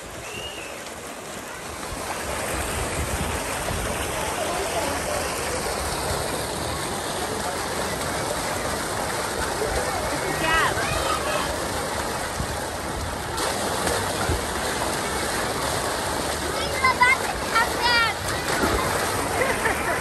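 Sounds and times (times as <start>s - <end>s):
murmur of voices: 0.0s - 20.0s
water rushing down slide: 0.0s - 20.0s.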